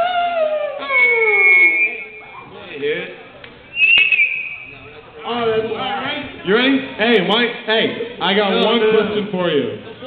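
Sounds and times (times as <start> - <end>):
thin steady high tone: 0.9 - 2.4.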